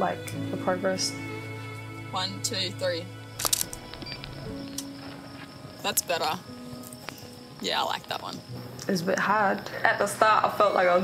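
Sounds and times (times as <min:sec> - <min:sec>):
background music: 0:00.0 - 0:11.0
camera shutter clicks: 0:03.4 - 0:04.9.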